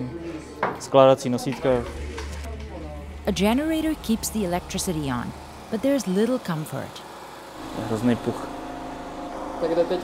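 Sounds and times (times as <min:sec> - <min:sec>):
portable generator humming: 0:01.4 - 0:10.0.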